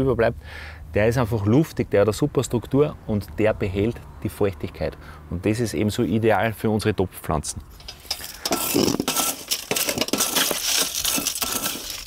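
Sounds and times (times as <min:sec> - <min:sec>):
metal scoop scraping potting mix: 0:07.7 - 0:12.0
metal clinking on metal: 0:07.8 - 0:12.0.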